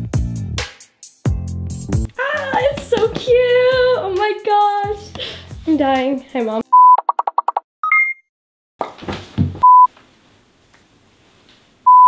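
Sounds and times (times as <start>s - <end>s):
steady test tone beep: 7.8s - 8.3s.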